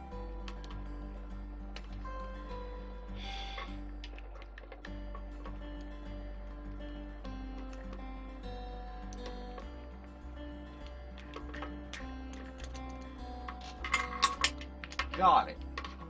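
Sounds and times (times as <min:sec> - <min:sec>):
music of slow held notes: 0:00.0 - 0:16.0.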